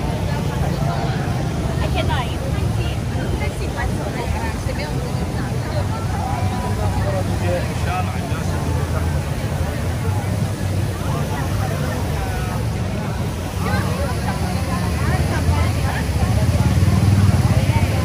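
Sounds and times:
traffic rumble: 0.0 - 18.0
voices of passers-by: 0.0 - 18.0.

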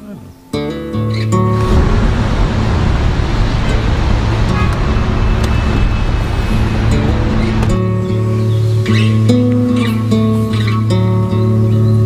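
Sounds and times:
car driving on road: 1.4 - 10.1.

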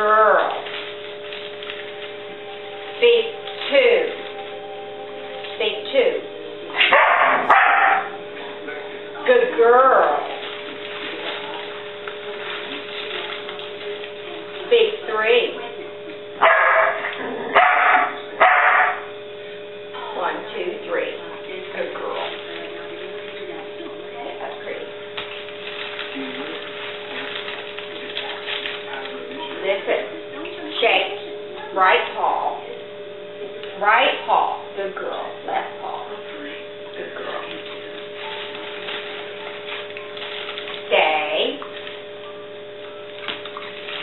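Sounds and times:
steady background hum: 0.0 - 44.0
dog barking: 6.8 - 8.2, 16.4 - 19.1.

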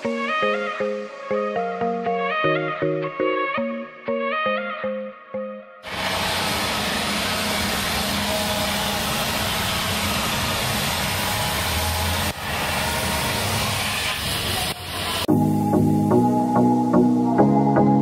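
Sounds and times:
welding torch flame hissing: 5.9 - 15.3.

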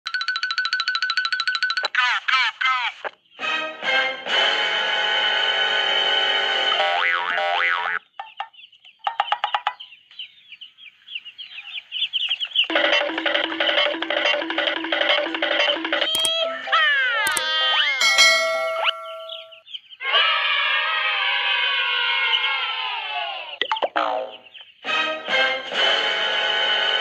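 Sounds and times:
chirping trill: 0.1 - 1.9, 3.2 - 27.0
upbeat background music: 3.4 - 4.9, 12.7 - 19.4, 24.8 - 27.0
springy boings: 12.7 - 19.6
held chord with wobbling pitch: 18.0 - 19.6.

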